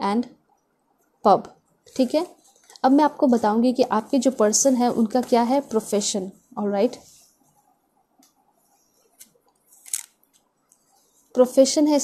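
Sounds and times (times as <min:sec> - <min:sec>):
playing cards clicking and rustling: 0:09.2 - 0:10.2.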